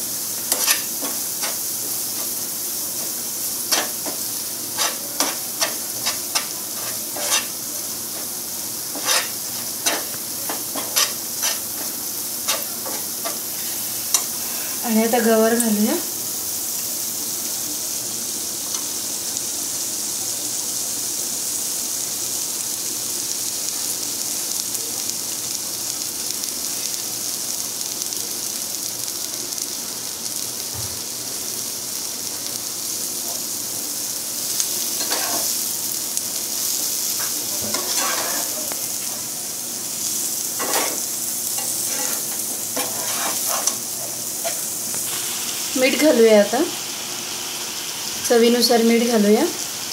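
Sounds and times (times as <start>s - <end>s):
spices sizzling in hot oil: 0.0s - 49.9s
spatula scraping a pan: 0.4s - 2.4s, 3.7s - 7.6s, 8.9s - 14.8s, 34.9s - 35.6s, 37.1s - 39.0s, 40.6s - 45.1s.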